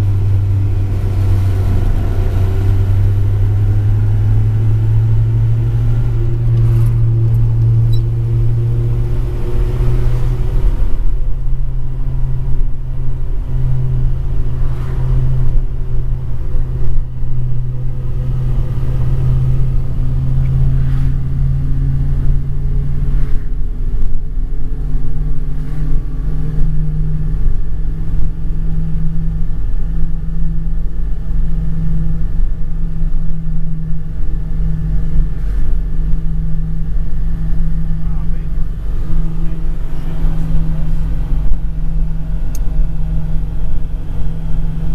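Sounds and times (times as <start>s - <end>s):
low road rumble: 0.0s - 44.9s
truck engine running: 0.0s - 44.9s.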